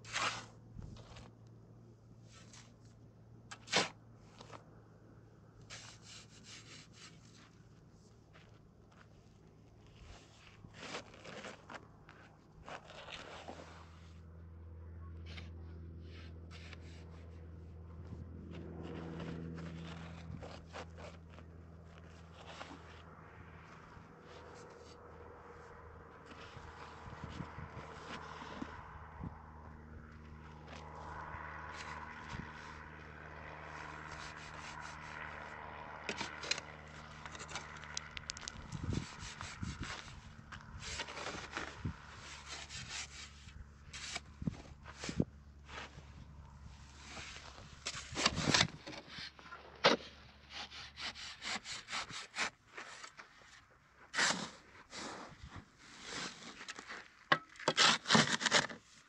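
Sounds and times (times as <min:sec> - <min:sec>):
metal shovel scraping sand: 0:00.0 - 0:01.3, 0:03.5 - 0:04.6, 0:05.7 - 0:07.4, 0:10.0 - 0:11.8, 0:12.6 - 0:14.2, 0:33.7 - 0:37.8, 0:38.8 - 0:59.0.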